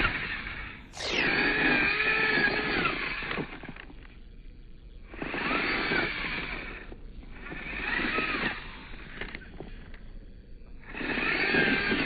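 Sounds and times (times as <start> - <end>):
small electric motor whining: 0.0 - 12.0.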